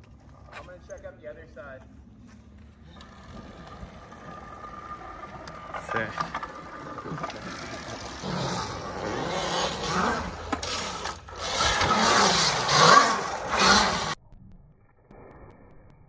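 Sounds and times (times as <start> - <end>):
tyre noise on concrete: 1.8 - 14.2
dirt bike engine revving: 2.0 - 14.2.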